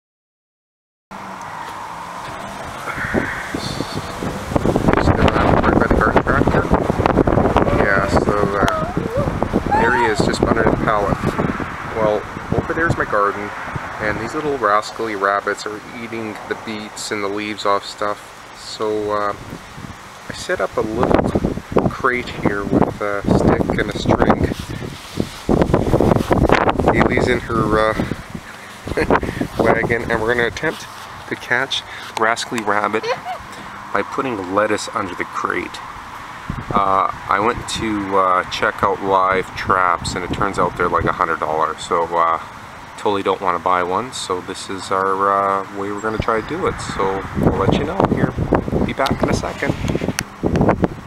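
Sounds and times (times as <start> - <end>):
outdoor background noise: 1.1 - 51.0
wind buffeting microphone: 1.8 - 15.5, 18.9 - 44.1, 44.7 - 51.0.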